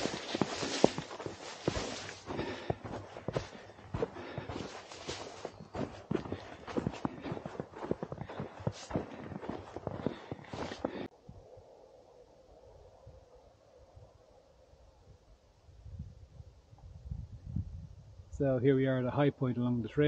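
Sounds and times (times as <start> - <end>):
boots crunching through snow: 0.0 - 11.1
rustling branches and clothing: 0.0 - 11.1.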